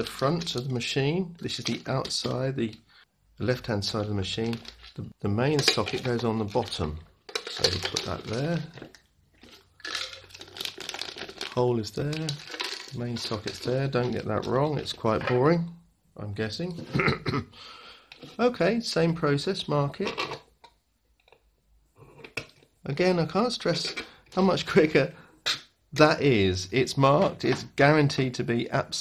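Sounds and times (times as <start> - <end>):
plastic bag crinkling: 4.3 - 14.6.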